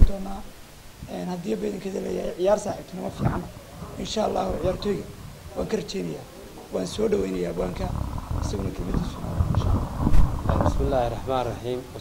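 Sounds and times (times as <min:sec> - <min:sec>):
man speaking: 0:01.0 - 0:09.7.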